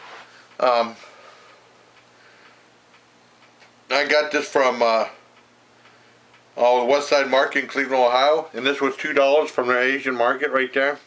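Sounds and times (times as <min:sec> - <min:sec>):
low steady hum: 0:00.0 - 0:11.0
light ticking: 0:00.4 - 0:10.2.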